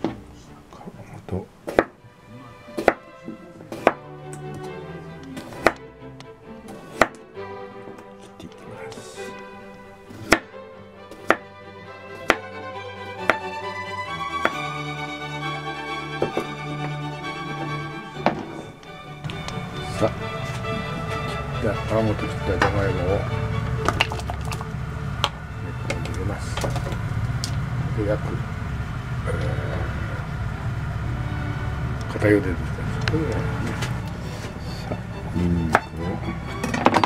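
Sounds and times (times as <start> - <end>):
background music: 0.0 - 37.0
knife chopping on plastic board: 2.8 - 3.0, 10.2 - 10.5.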